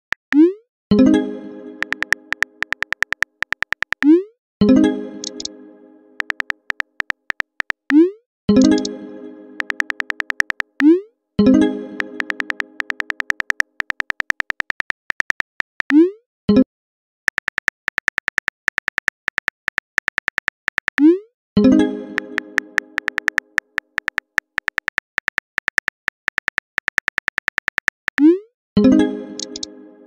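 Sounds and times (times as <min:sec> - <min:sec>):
keyboard tap clicks: 0:01.8 - 0:04.1, 0:05.2 - 0:05.5, 0:06.2 - 0:08.0, 0:08.6 - 0:08.9, 0:09.6 - 0:10.9, 0:12.0 - 0:16.0, 0:17.3 - 0:21.0, 0:23.0 - 0:28.2, 0:29.4 - 0:29.7.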